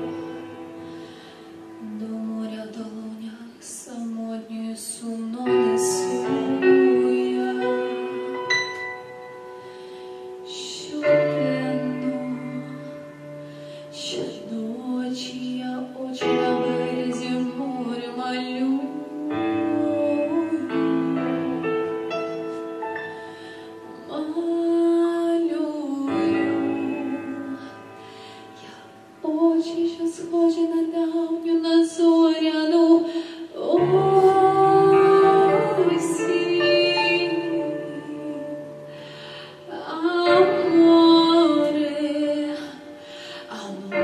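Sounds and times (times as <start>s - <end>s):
woman singing pop ballad: 0.0s - 9.1s, 9.7s - 44.0s
instrumental accompaniment: 5.4s - 30.0s.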